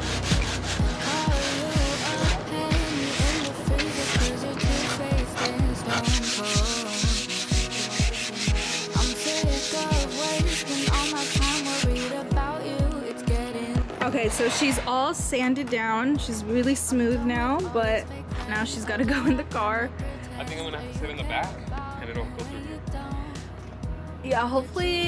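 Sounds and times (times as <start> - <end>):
sanding sponge scratching wood: 0.0 - 12.3
background music with steady beat: 0.0 - 25.0.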